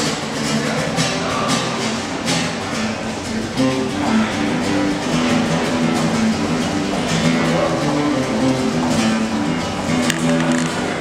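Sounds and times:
acoustic guitar melody: 0:00.0 - 0:11.0.

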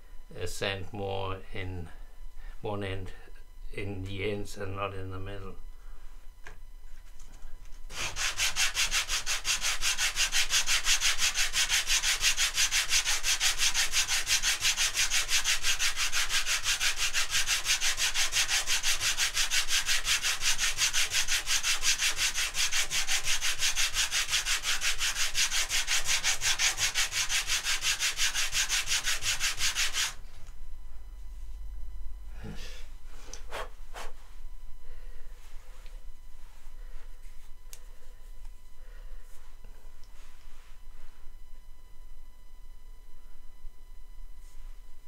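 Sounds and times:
wood block sanding on sandpaper: 0:07.9 - 0:30.2.

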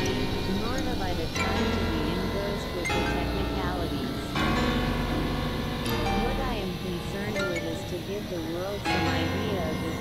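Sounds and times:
synthesizer drone chords: 0:00.0 - 0:10.0.

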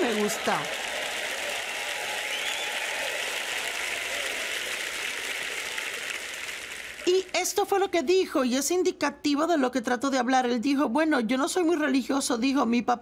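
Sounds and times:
audience applauding: 0:00.0 - 0:07.4.

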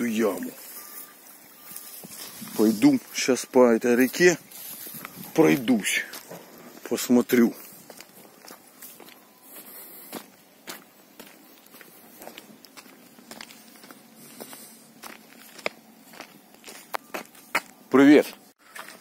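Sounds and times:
footsteps on grass and dirt: 0:00.0 - 0:19.0.

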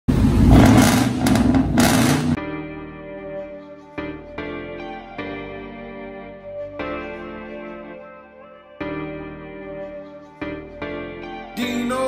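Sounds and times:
engine revving loud exhaust: 0:00.1 - 0:02.4
soft piano music: 0:02.4 - 0:12.0.

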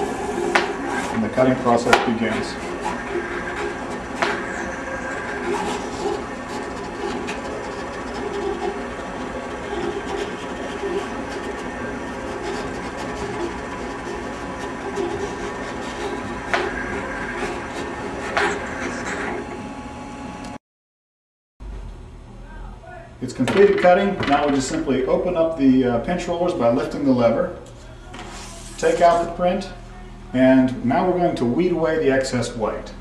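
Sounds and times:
vinyl cutter whirring: 0:00.0 - 0:20.6, 0:23.4 - 0:31.8.

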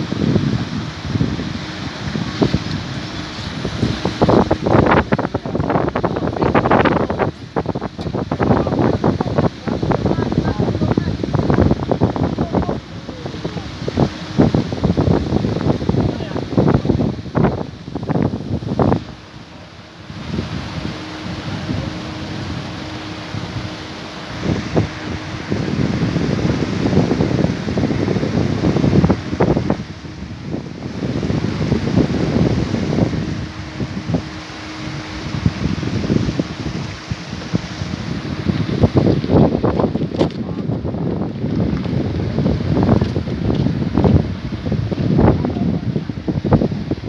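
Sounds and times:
faint steady hum: 0:00.0 - 0:47.0
steady rushing background: 0:00.0 - 0:47.0
wind buffeting microphone: 0:00.0 - 0:47.0.

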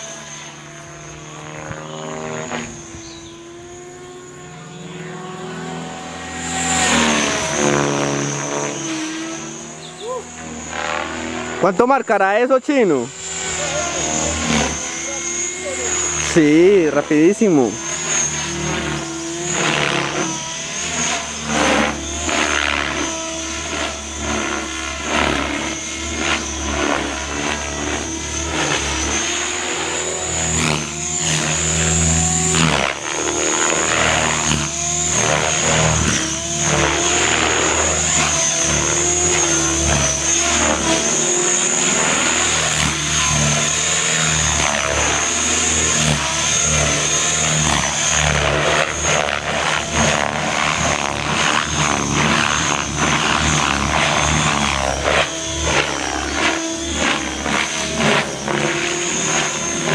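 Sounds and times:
rc helicopter motor whine: 0:00.0 - 0:59.9.

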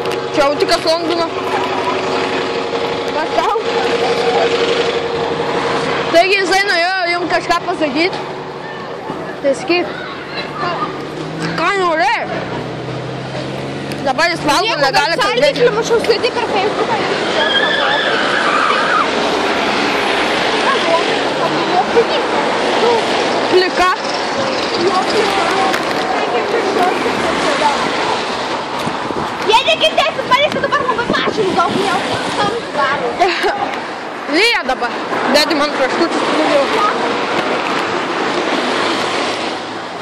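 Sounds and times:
car passing: 0:00.0 - 0:40.0
rushing street noise: 0:00.0 - 0:40.0
high tone sliding down: 0:17.0 - 0:20.0.

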